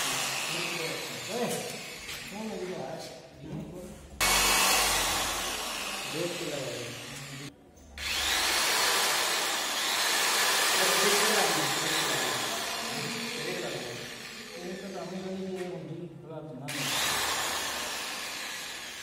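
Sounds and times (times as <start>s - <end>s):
electric motor whirring: 0.0s - 2.5s, 4.2s - 15.5s, 16.7s - 19.0s.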